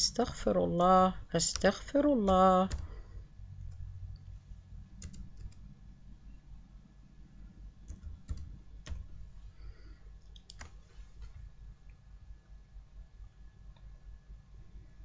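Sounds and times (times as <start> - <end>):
faint low hum: 0.0 - 15.0
keyboard keys clicking: 1.4 - 3.0, 5.0 - 5.7, 7.8 - 9.2, 10.3 - 11.5.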